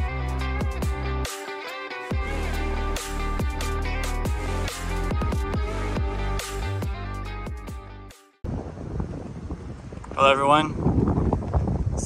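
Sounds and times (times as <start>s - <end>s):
electronic music: 0.0s - 8.3s
wind buffeting microphone: 8.4s - 12.0s.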